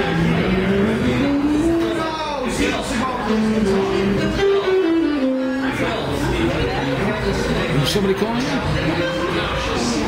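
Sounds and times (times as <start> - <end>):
gritty amplified instrument notes: 0.0 - 10.0.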